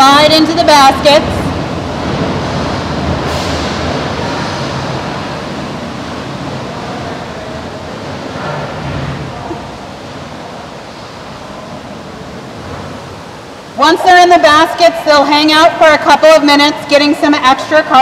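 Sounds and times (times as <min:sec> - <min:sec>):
water rushing: 0:00.5 - 0:15.6.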